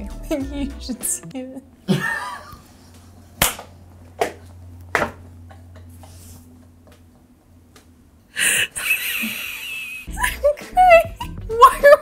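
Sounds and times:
woman laughing: 0:01.8 - 0:02.7, 0:08.4 - 0:12.0
hand claps: 0:03.4 - 0:04.4.

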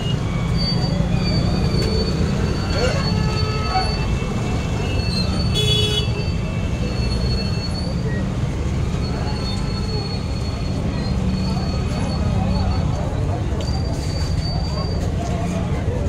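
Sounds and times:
traffic and crowd rumble: 0:00.0 - 0:16.0.

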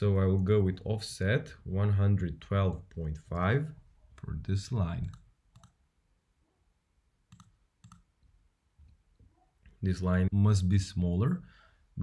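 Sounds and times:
computer mouse clicks: 0:05.0 - 0:05.8, 0:07.3 - 0:08.1.

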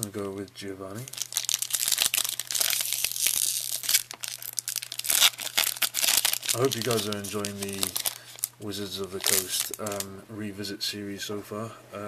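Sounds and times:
foil wrapper crinkling and tearing: 0:01.0 - 0:10.1.

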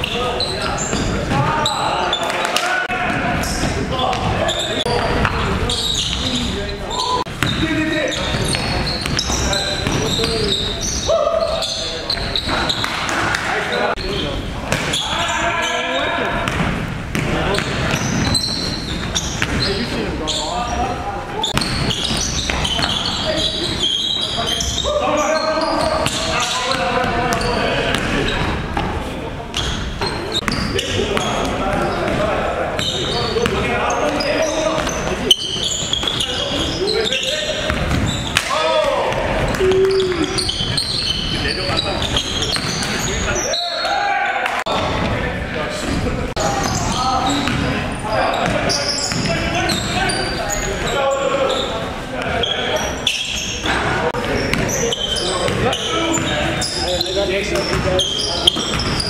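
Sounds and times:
players calling out: 0:00.0 - 0:59.0.

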